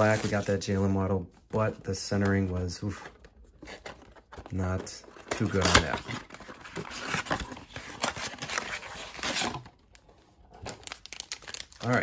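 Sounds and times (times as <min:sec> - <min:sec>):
packaging crinkling: 0:03.8 - 0:12.0
cardboard tearing: 0:05.1 - 0:09.7.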